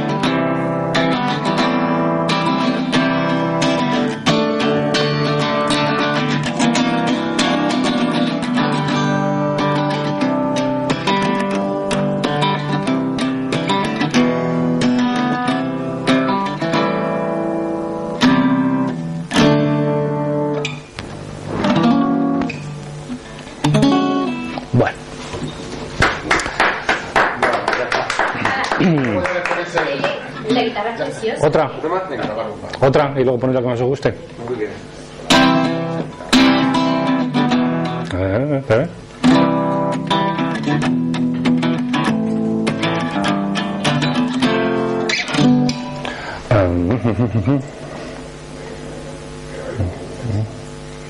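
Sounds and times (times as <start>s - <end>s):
acoustic guitar chords: 0.0s - 31.6s, 34.2s - 51.0s.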